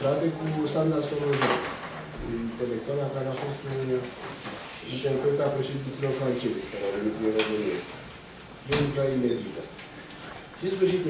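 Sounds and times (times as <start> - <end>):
man speaking: 0.0 - 1.6, 2.2 - 8.0, 8.6 - 9.8, 10.6 - 11.0.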